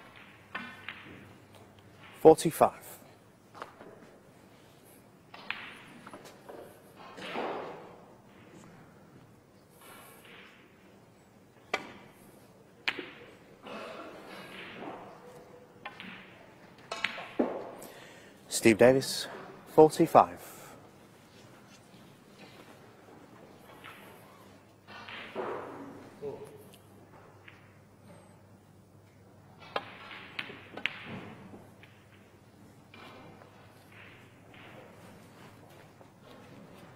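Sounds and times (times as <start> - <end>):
snooker balls clicking: 0.0 - 2.5, 3.5 - 11.0, 14.6 - 17.9, 21.2 - 36.9.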